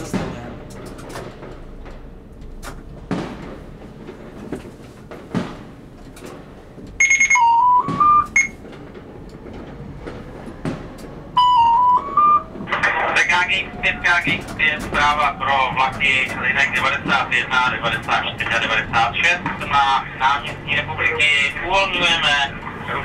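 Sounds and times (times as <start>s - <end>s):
fireworks bangs and pops: 3.0s - 6.5s, 7.8s - 9.0s, 10.0s - 11.0s
electronic signal chime: 7.0s - 8.6s.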